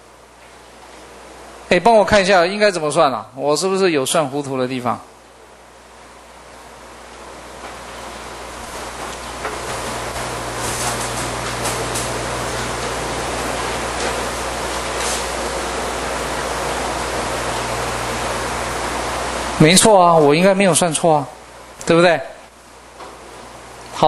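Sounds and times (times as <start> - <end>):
low electrical hum: 0.0 - 24.0
room and microphone hiss: 0.0 - 24.0.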